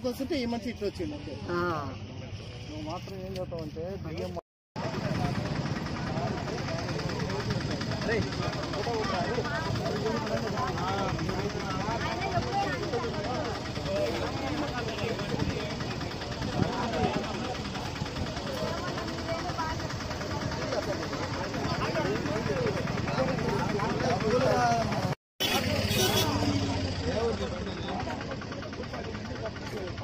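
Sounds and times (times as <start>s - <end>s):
people talking indistinctly: 0.0s - 30.0s
vehicle engine humming: 0.0s - 30.0s.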